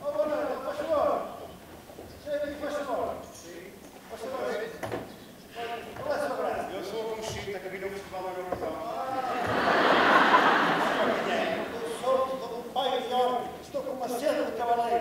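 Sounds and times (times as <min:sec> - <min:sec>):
men chattering and calling out: 0:02.2 - 0:15.0.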